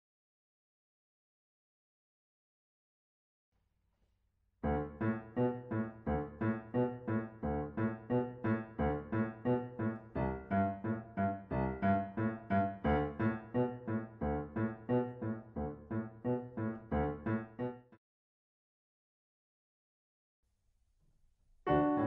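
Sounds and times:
piano accompaniment: 4.6 - 18.0, 21.7 - 22.0.

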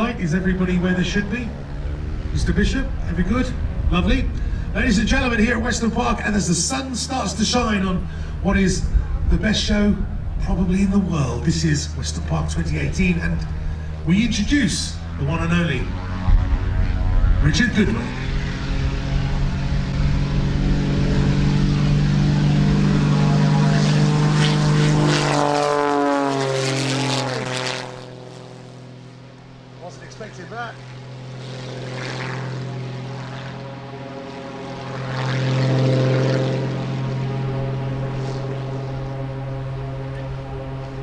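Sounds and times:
propeller plane engine: 0.0 - 41.0.

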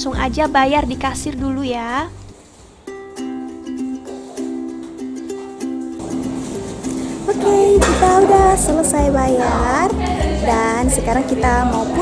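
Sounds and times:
plucked-string tune: 2.9 - 12.0.

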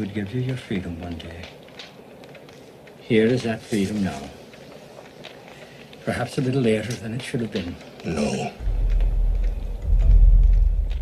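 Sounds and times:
deep rumbling tense film score: 0.0 - 11.0.

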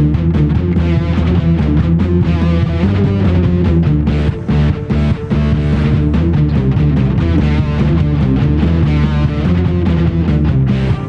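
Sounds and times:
electric guitar riff: 0.0 - 11.0
heavy rock music: 0.0 - 11.0.

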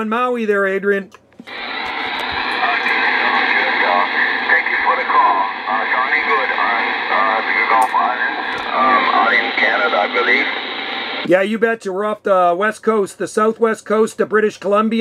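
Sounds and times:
radio static hiss: 1.4 - 11.5
thin voice over radio: 1.5 - 11.2.

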